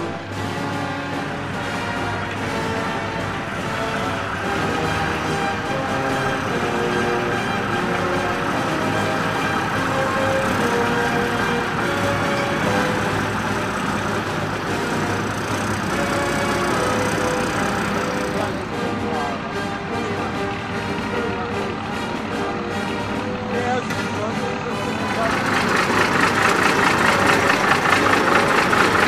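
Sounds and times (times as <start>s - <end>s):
lorry diesel engine passing: 0.0s - 29.0s
music playing: 0.0s - 29.0s.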